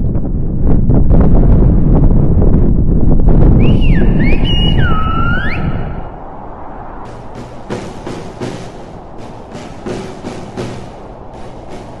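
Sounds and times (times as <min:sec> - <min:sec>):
wind buffeting microphone: 0:00.0 - 0:12.0
person whistling: 0:03.6 - 0:05.8.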